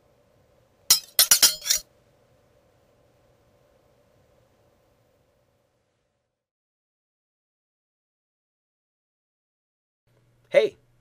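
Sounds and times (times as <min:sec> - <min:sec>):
sharp bright clinking: 0:00.9 - 0:01.8.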